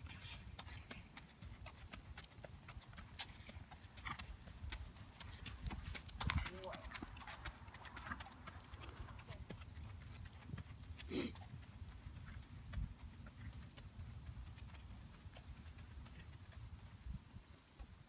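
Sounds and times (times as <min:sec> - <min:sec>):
horse hooves on gravel: 0:00.0 - 0:18.0.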